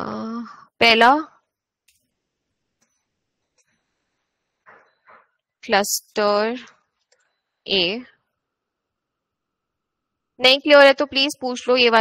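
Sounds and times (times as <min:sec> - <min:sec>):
person speaking: 0:04.7 - 0:06.7.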